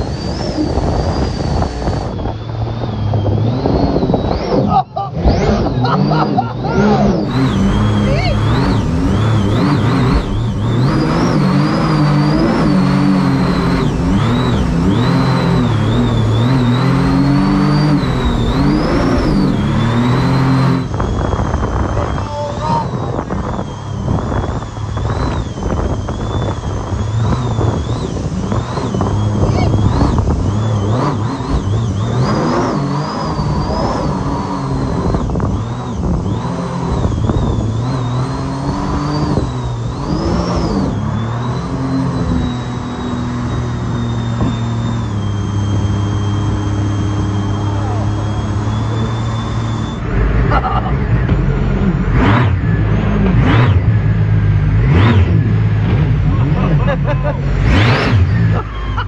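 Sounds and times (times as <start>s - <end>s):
jet boat engine revving: 0.0s - 59.0s
supercharger whine: 0.0s - 59.0s.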